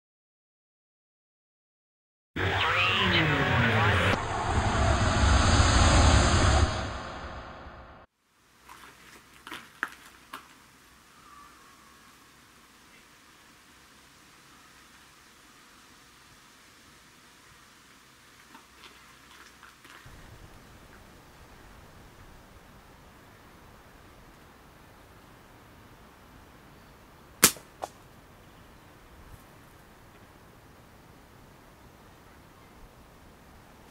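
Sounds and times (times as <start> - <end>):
deep rumble: 2.8 - 8.1
fireball rushing noise: 3.8 - 8.1
slingshot bands snapping: 27.4 - 28.0.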